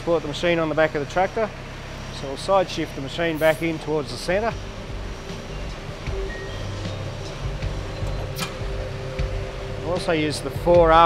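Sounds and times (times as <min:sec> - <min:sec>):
hydraulic whine: 0:00.0 - 0:11.0
tractor engine running: 0:00.0 - 0:11.0.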